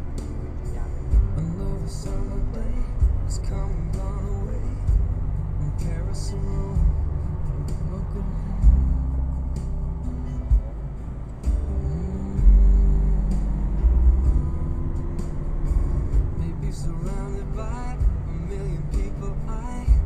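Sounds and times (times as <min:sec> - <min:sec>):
car engine and road rumble: 0:00.0 - 0:20.0
music playing: 0:00.0 - 0:20.0.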